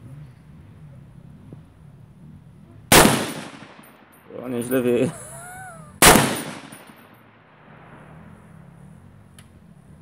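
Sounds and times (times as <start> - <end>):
rifle shot: 2.9 - 4.1, 6.0 - 8.2.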